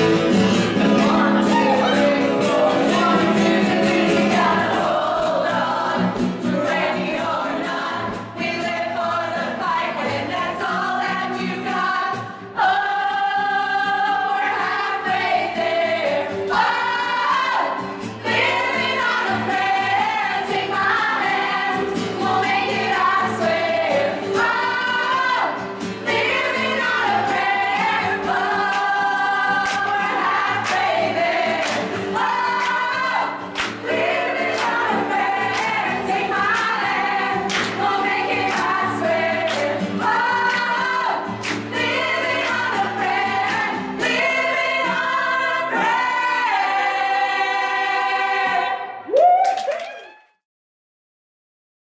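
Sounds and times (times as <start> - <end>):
women's choir singing: 0.2 - 49.1.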